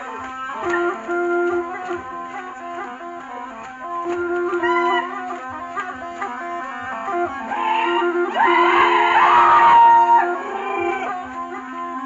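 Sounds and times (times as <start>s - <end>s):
reedy wind instrument melody: 0.0s - 12.0s.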